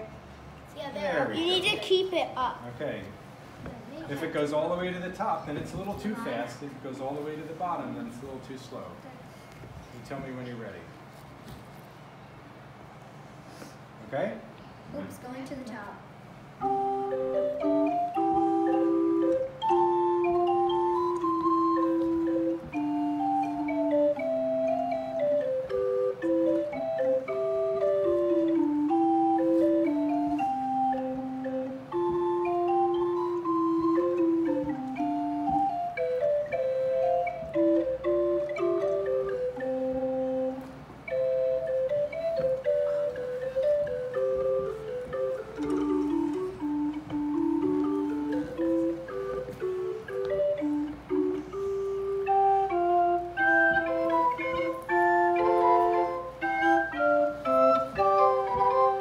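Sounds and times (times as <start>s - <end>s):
small pipe organ playing: 16.6s - 59.0s.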